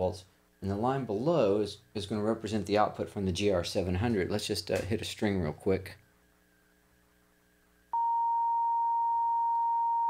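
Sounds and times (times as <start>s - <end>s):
steady pure sine tone: 6.0s - 10.0s.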